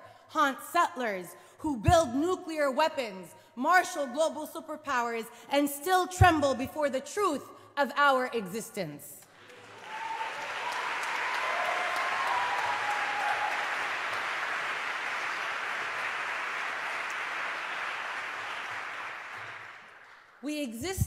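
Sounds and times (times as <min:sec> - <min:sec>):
people cheering: 0:09.4 - 0:20.1
audience applauding: 0:09.4 - 0:20.4.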